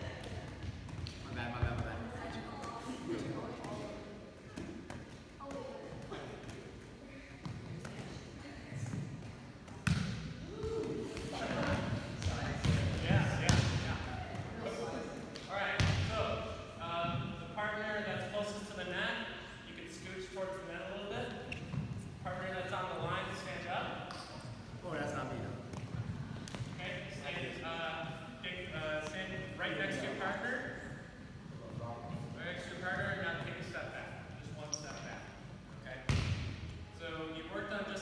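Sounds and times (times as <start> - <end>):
volleyballs hit and bouncing: 0.0 - 16.5, 23.9 - 27.2, 36.0 - 36.8.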